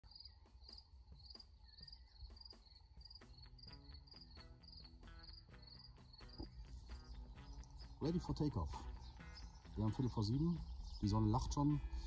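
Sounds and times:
crickets chirping: 0.1 - 8.0
soft music: 0.2 - 12.0.

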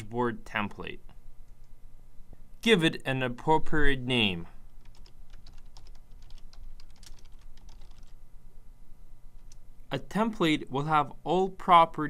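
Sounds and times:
computer keyboard typing: 4.8 - 8.2.

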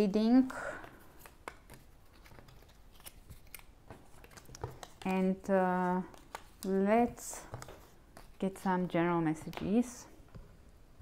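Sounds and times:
cards clicking and sliding: 0.8 - 5.3, 5.9 - 6.8.

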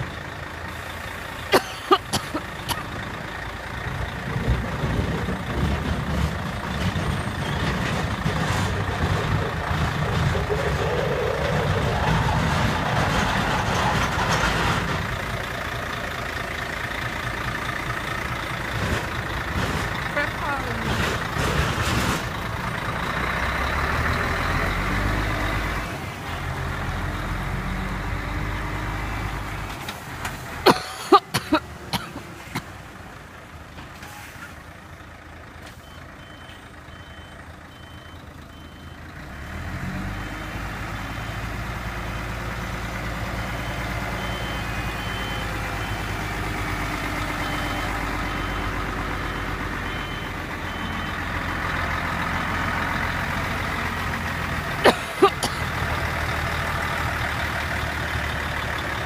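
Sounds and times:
truck diesel engine running: 0.0 - 59.0
faint reversing beep: 35.8 - 39.1, 43.4 - 46.3, 47.3 - 51.3.

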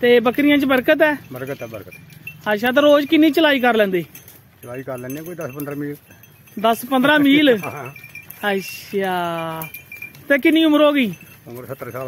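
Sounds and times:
man talking: 0.0 - 6.0, 6.6 - 8.0, 10.3 - 12.0
faint metallic clinking: 0.0 - 12.0.

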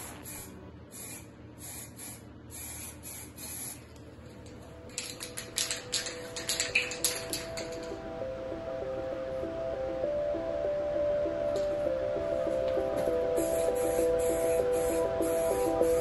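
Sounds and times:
spray paint can hissing: 0.0 - 3.9, 4.9 - 7.9, 13.0 - 16.0
sharp clicks: 4.4 - 8.0
music: 4.6 - 16.0.

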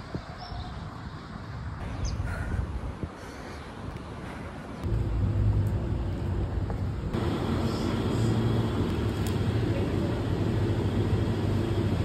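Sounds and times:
low mechanical hum: 4.8 - 12.0.

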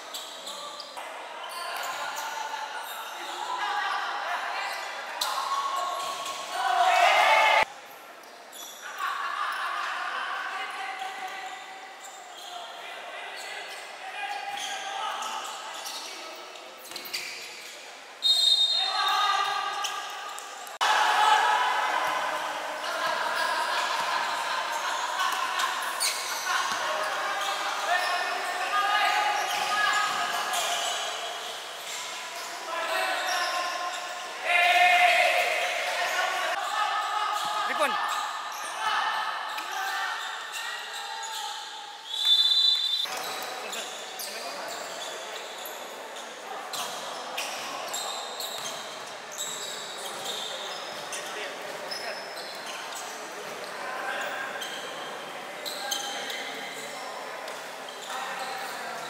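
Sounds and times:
people calling out in gym: 0.1 - 7.7, 8.5 - 17.3, 18.2 - 45.7.

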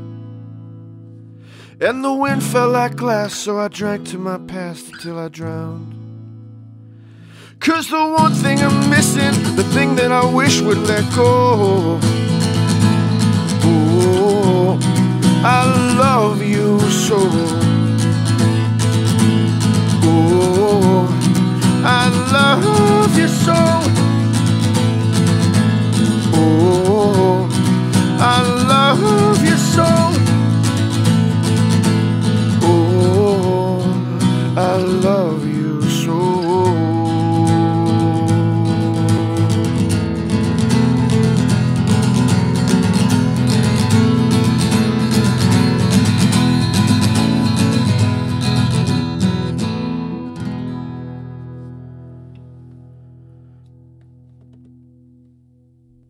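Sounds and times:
acoustic guitar strumming: 0.0 - 56.0
person singing wordless phrases: 1.6 - 6.0, 7.4 - 12.2, 13.5 - 17.9, 19.8 - 24.2, 26.1 - 30.6, 32.4 - 40.1.

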